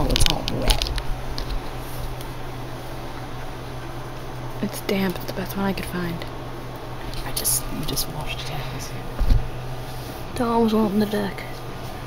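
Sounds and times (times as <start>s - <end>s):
low hum: 0.0s - 12.0s
room background hiss: 0.0s - 12.0s.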